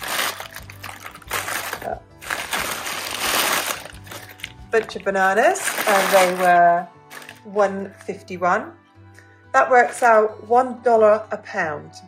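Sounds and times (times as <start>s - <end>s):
paper bag crinkling: 0.0s - 7.5s.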